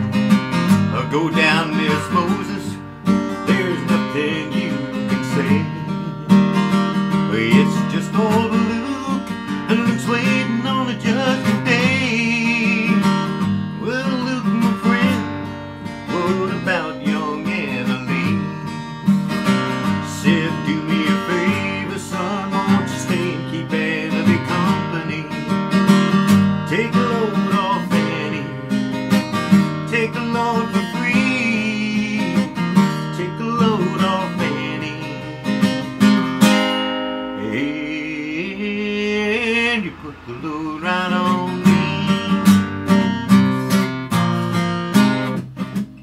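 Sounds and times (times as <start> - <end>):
acoustic guitar strumming and picking: 0.0 - 46.0.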